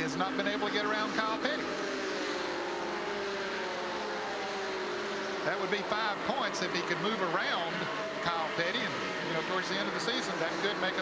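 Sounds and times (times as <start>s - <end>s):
race car engines at full throttle: 0.0s - 11.0s.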